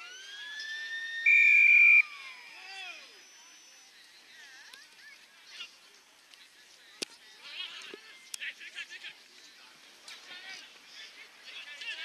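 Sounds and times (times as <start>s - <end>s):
siren winding up and down: 0.0s - 3.8s
whistle blast: 0.8s - 2.4s.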